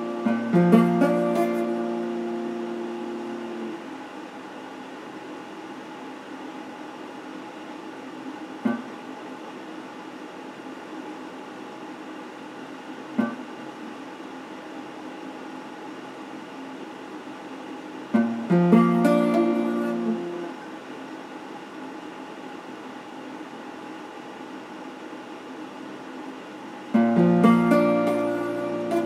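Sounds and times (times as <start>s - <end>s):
soft plucked guitar notes: 0.0s - 3.7s, 18.2s - 20.5s, 27.0s - 29.0s
electric guitar chord ringing: 0.0s - 3.8s, 18.2s - 20.5s, 27.0s - 29.0s
amplifier hiss and hum: 0.0s - 29.0s.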